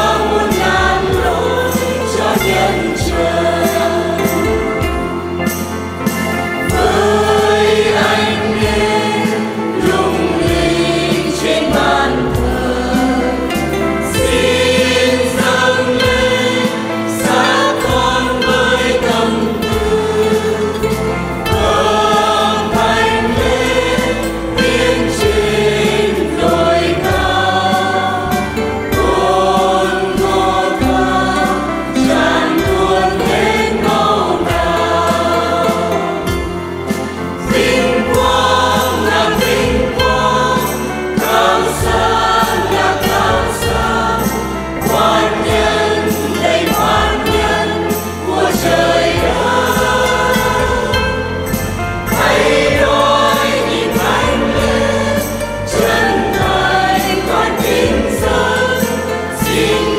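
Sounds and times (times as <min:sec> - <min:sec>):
choir singing a hymn: 0:00.0 - 0:59.9
guitar accompaniment: 0:00.0 - 0:59.9.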